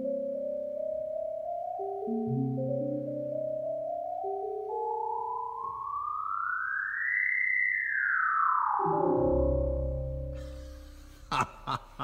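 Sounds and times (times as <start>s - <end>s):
low synthesizer chord with bass: 9.0s - 11.3s.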